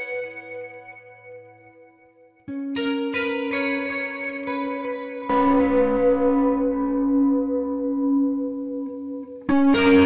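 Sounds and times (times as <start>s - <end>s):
distorted guitar note: 5.3s - 8.3s, 9.5s - 10.0s.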